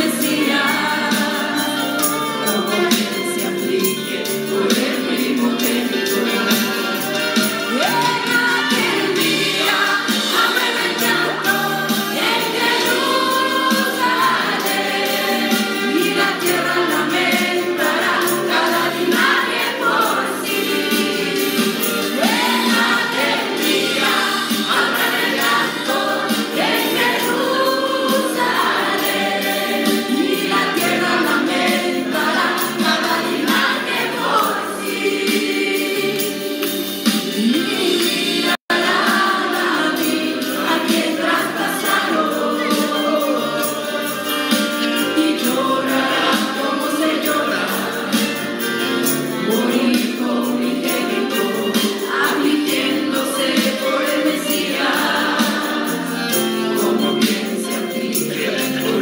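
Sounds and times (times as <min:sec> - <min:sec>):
choir singing: 0:00.0 - 0:59.0.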